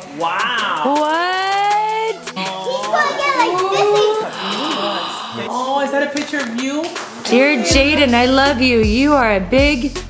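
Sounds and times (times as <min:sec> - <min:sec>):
children calling and squealing: 0:00.6 - 0:05.4.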